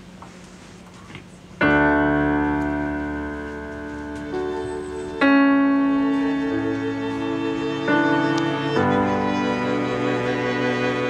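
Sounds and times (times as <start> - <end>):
faint hum: 0.0 - 11.0
piano chord on keyboard: 1.6 - 11.0.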